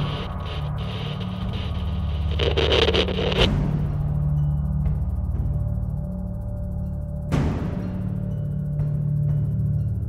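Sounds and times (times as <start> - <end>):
noisy whoosh: 0.0 - 4.0
low pulsing drone: 0.0 - 10.0.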